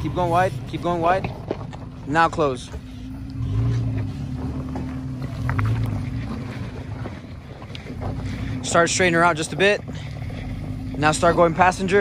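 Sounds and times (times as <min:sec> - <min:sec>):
truck engine at low revs: 0:00.0 - 0:12.0.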